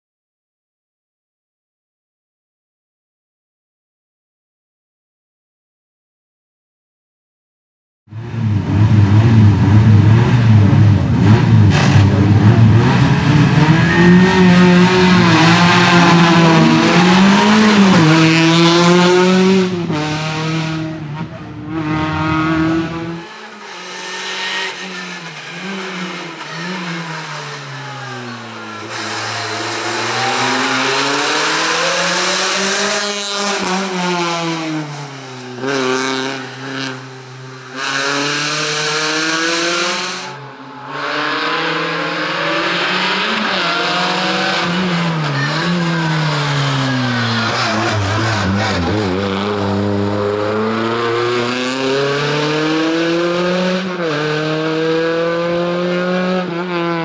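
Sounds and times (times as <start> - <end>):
car engine revving: 8.1 - 57.0.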